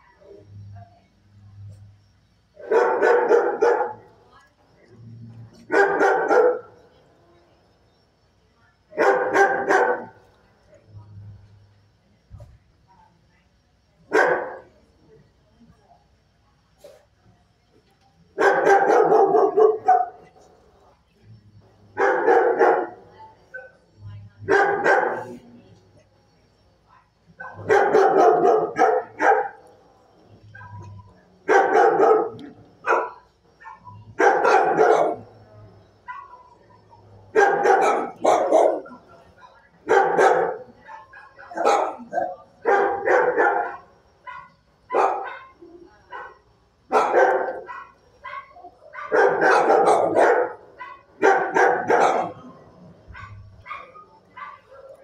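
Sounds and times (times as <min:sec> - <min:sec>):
dog barking: 0:02.6 - 0:04.1, 0:05.6 - 0:06.8, 0:09.0 - 0:10.2, 0:14.1 - 0:14.7, 0:18.4 - 0:20.3, 0:22.0 - 0:23.8, 0:24.4 - 0:25.4, 0:27.4 - 0:29.7, 0:30.5 - 0:30.9, 0:31.5 - 0:35.3, 0:36.0 - 0:39.0, 0:39.8 - 0:55.0.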